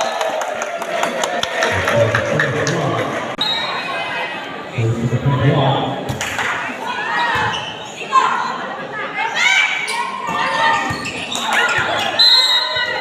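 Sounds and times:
sneakers squeaking on hardwood: 7.2 - 8.0, 9.9 - 12.9.

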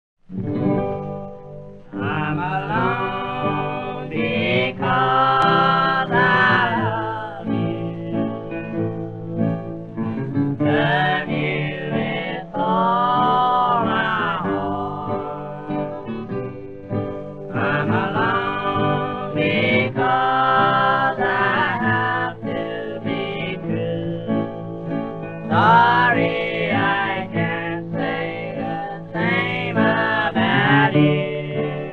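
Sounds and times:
acoustic guitar accompaniment: 0.2 - 31.9
person singing wavering melody: 10.6 - 16.4.

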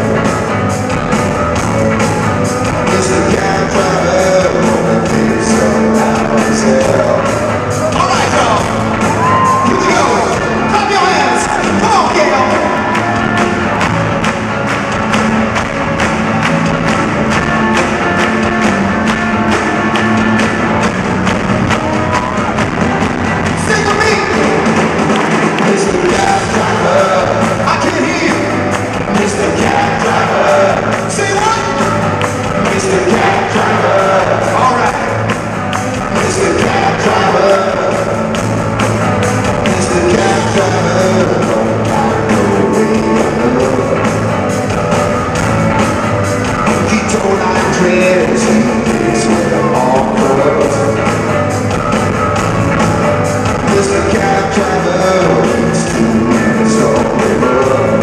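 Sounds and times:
electric guitars: 0.0 - 58.0
steady drum beat: 0.0 - 58.0.

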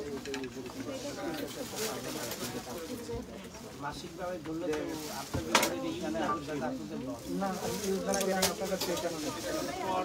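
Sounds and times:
indistinct background voices: 0.0 - 10.0.

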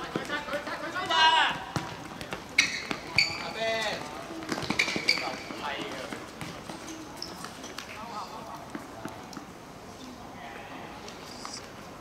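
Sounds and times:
shoe squeaks: 2.6 - 3.6, 4.6 - 5.6, 6.7 - 8.3.

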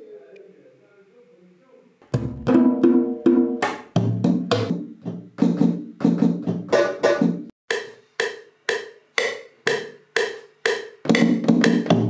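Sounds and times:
percussion hits: 2.1 - 12.0.

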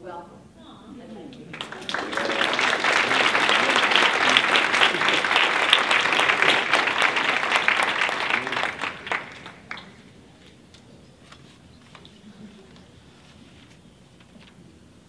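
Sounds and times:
audience applauding: 1.5 - 10.1.

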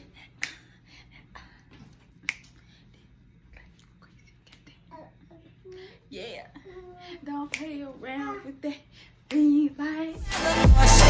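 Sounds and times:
finger snap: 0.2 - 0.8, 2.1 - 2.8, 7.4 - 7.9, 9.2 - 9.6.

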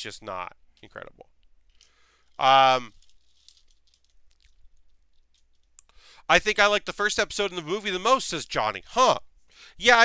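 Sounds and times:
plastic toy bricks rattling: 1.7 - 5.7.

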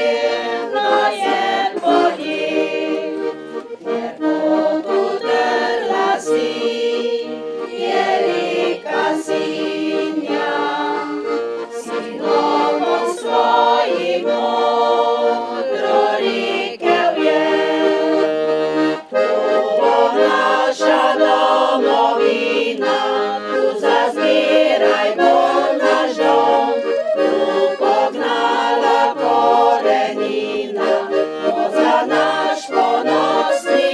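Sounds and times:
accordion playing: 0.0 - 33.9
women's choir singing: 0.0 - 33.9.

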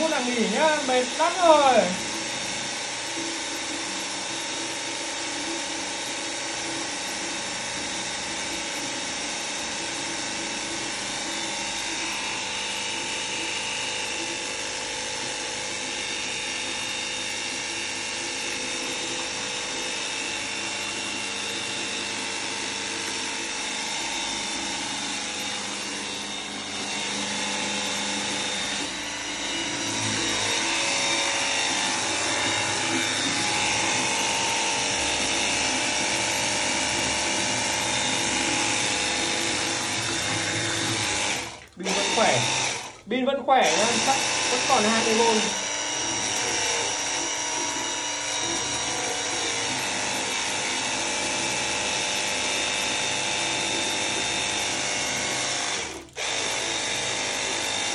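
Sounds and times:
pressure washer motor whining: 0.0 - 57.9
water jet hissing into bucket: 22.1 - 57.9.

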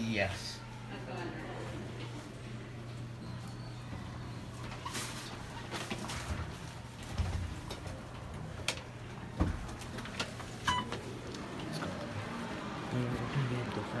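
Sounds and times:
elevator hum: 0.6 - 14.0.

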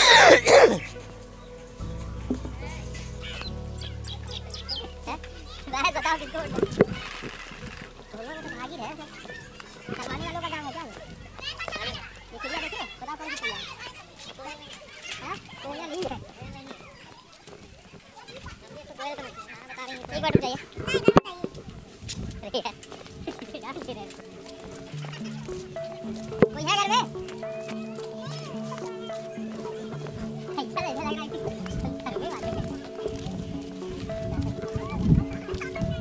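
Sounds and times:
background music of held notes: 0.0 - 16.7, 19.9 - 36.0
children calling out: 2.5 - 21.8, 22.4 - 36.0.

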